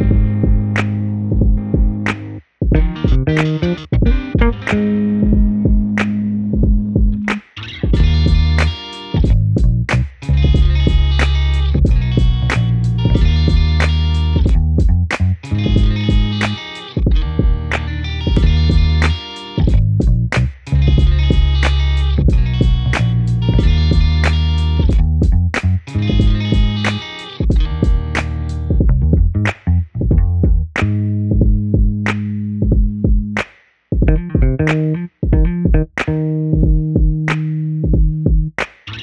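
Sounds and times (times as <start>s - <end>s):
upbeat guitar instrumental: 0.0s - 29.5s, 30.1s - 33.4s, 34.0s - 39.0s.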